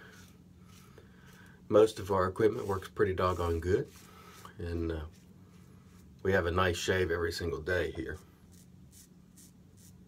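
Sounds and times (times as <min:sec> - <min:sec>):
razor scraping stubble: 0:00.0 - 0:06.5, 0:08.4 - 0:10.0.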